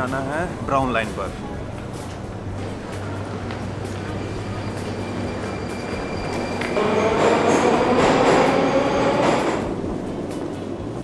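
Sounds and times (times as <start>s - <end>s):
metro train rumbling past: 0.0s - 11.0s
station hall noise: 0.0s - 11.0s.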